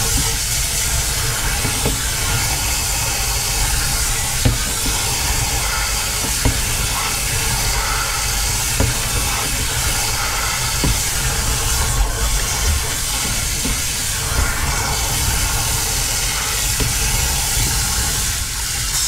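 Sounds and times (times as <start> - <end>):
water rushing from hose: 0.0 - 19.0
light knocks: 3.7 - 15.5.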